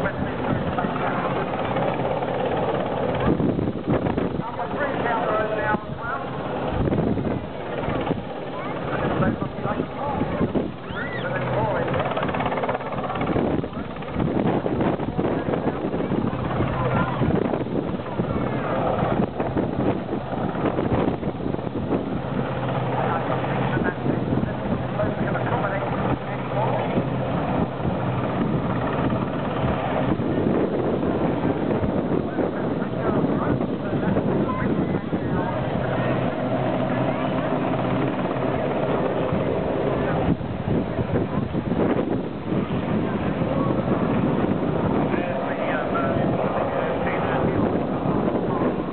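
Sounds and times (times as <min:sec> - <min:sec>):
helicopter hovering: 0:00.0 - 0:48.9
wind on microphone: 0:00.0 - 0:48.9.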